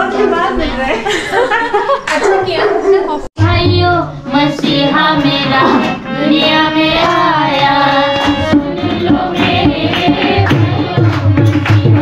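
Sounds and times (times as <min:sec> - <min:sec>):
hand drum: 0:03.4 - 0:12.0
group singing a carol: 0:04.3 - 0:12.0
harmonium: 0:04.3 - 0:12.0.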